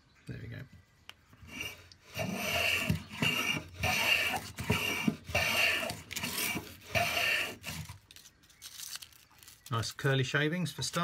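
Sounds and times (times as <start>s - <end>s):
hand plane rasping on wood: 1.5s - 7.9s.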